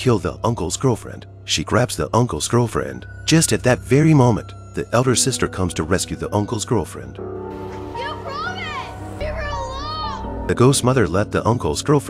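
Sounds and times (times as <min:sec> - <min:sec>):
low sustained film score: 0:00.0 - 0:12.0
girl speaking: 0:08.0 - 0:10.3.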